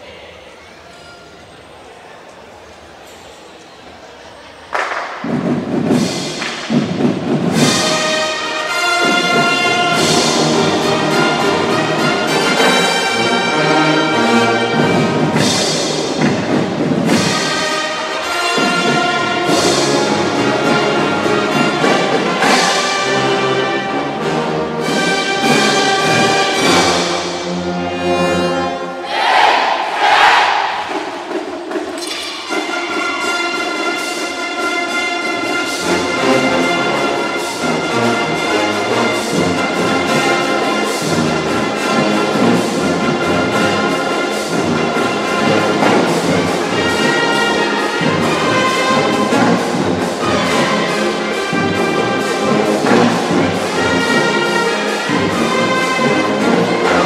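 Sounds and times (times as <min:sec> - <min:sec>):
marching band playing: 0:04.7 - 0:57.0
low brass and percussion: 0:05.2 - 0:57.0.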